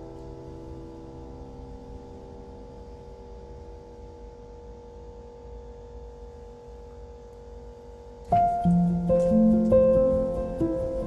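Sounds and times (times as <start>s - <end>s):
steady hum with held tones: 0.0s - 11.0s.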